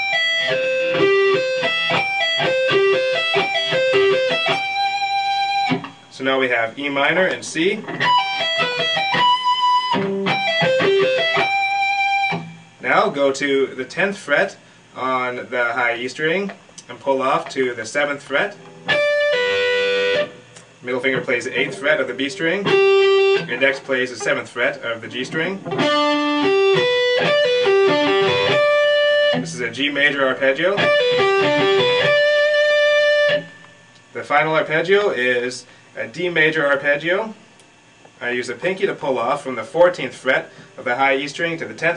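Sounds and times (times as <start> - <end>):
electric guitar arpeggios: 0.0 - 6.1, 7.8 - 12.8, 18.6 - 24.4, 25.1 - 34.1.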